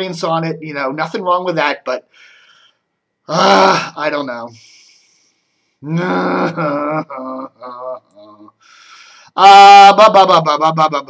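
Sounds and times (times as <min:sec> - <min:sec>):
man making wordless sounds: 0:05.8 - 0:08.6, 0:09.4 - 0:11.0.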